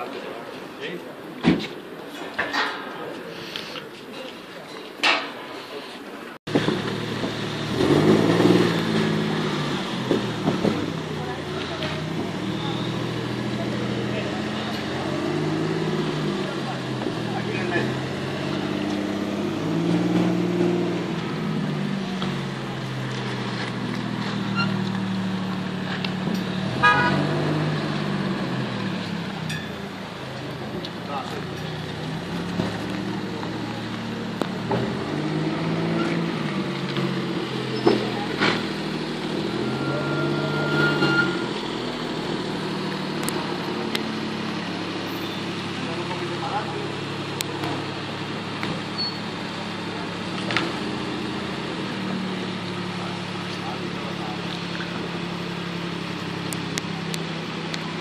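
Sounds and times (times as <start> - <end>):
people talking: 0.0 - 6.4, 9.4 - 27.3, 28.2 - 35.0, 35.7 - 58.0
car engine at low revs: 6.5 - 58.0.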